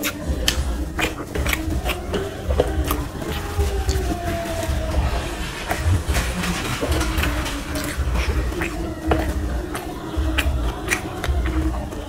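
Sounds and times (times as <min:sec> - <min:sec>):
fingers mixing rice on brass plate: 0:00.0 - 0:12.0
mouth chewing food: 0:00.0 - 0:12.0.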